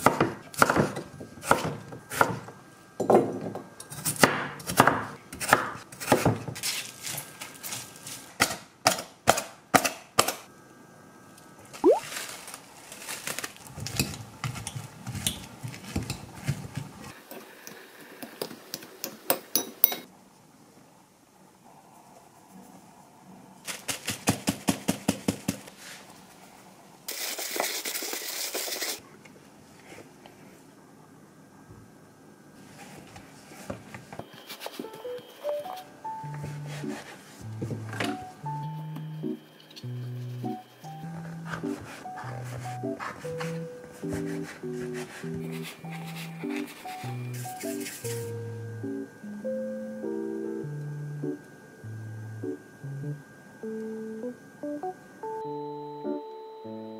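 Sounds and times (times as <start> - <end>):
salt sprinkling hiss: 27.1 - 29.0.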